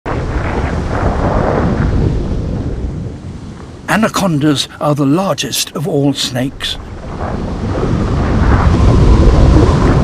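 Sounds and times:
underwater rushing rumble: 0.1s - 4.2s, 6.5s - 10.0s.

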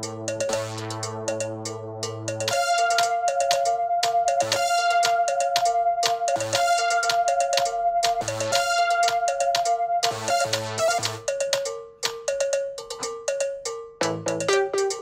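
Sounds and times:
bell-like synth riff: 0.0s - 15.0s
hi-hat ticks: 0.0s - 15.0s.

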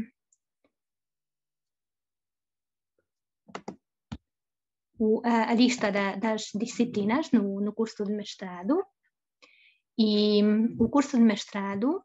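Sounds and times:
person speaking: 5.0s - 8.7s.

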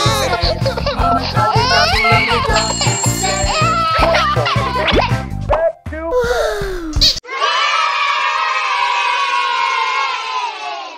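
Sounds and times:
children cheering: 0.0s - 4.9s, 7.2s - 10.9s
music: 0.0s - 7.2s
cartoon cry: 1.4s - 5.1s.

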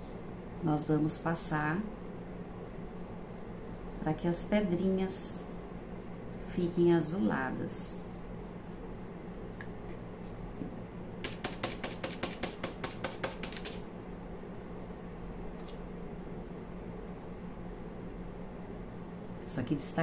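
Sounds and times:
faint steady hum: 0.0s - 20.0s
paintbrush strokes: 0.2s - 9.8s, 11.2s - 20.0s.

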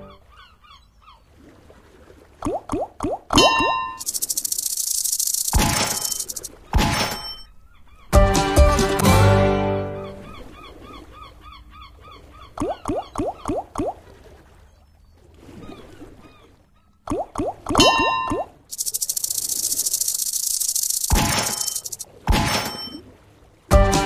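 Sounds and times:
quick rising game tones: 3.5s - 6.5s, 18.7s - 22.0s.

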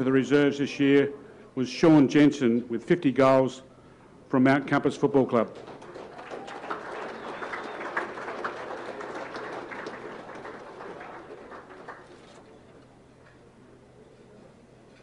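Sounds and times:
audience applause: 5.5s - 12.5s.

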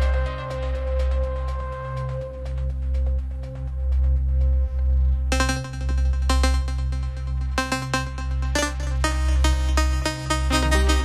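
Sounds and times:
deep continuous bass: 0.0s - 11.0s
held synth tone: 10.5s - 11.0s
higher synth note: 10.5s - 11.0s.

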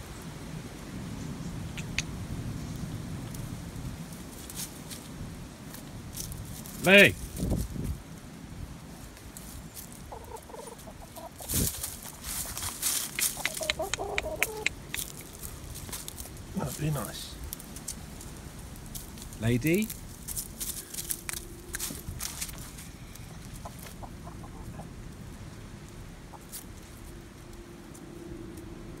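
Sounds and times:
hen clucking: 1.6s - 2.1s, 10.0s - 15.6s, 20.8s - 27.1s.

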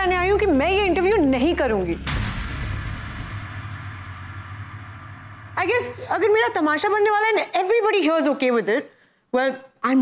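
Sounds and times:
music hit: 1.5s - 7.5s.

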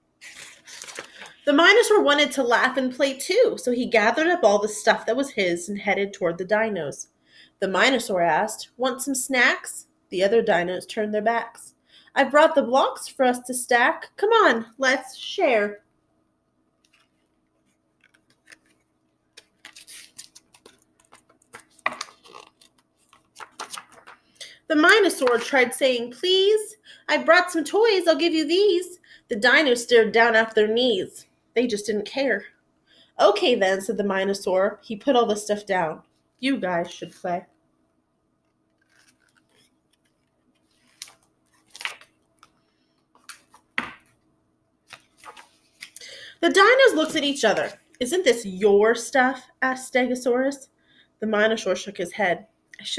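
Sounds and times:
paper pages rustling: 0.2s - 1.5s, 16.8s - 24.3s, 38.4s - 44.2s, 44.9s - 46.0s
book covers clicking: 18.0s - 18.8s.

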